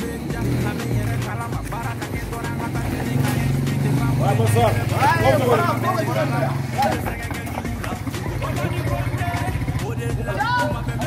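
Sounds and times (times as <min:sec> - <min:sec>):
background music: 0:00.0 - 0:11.0
small motorcycle engine running: 0:00.0 - 0:11.0.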